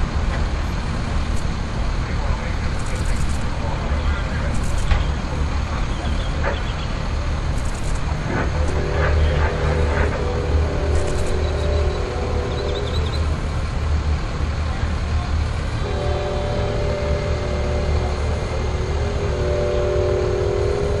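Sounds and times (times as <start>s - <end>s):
diesel engine running: 0.0s - 21.0s
distant train horn: 5.1s - 21.0s.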